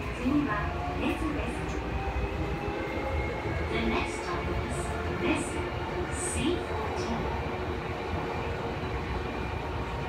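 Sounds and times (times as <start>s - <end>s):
subway train wheels rumbling: 0.0s - 10.0s.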